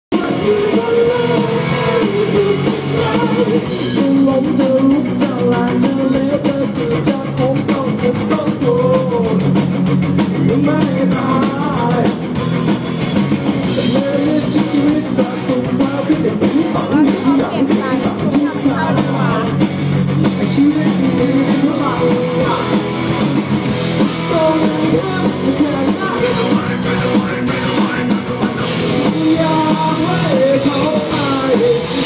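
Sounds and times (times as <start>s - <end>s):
drum kit: 0.0s - 32.0s
person singing: 0.1s - 9.6s, 10.4s - 12.3s, 13.7s - 23.3s, 24.0s - 32.0s
electric guitars: 0.1s - 32.0s.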